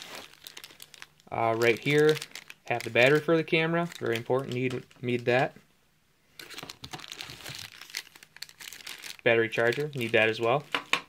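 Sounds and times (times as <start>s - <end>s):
plastic packaging crinkling: 0.0s - 5.5s, 6.4s - 11.0s.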